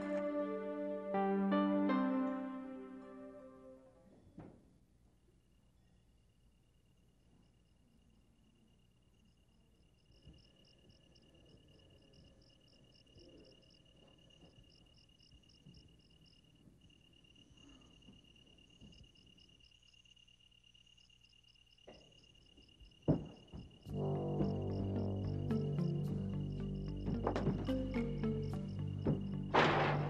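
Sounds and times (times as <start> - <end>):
crickets chirping: 5.4 - 30.0
thuds: 23.1 - 23.8, 29.0 - 30.0.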